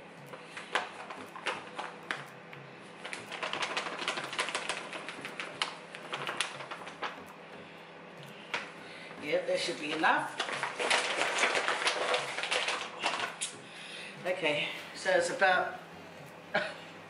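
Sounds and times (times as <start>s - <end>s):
flour bag crinkling: 0.4s - 2.3s, 3.0s - 7.2s, 9.9s - 13.6s.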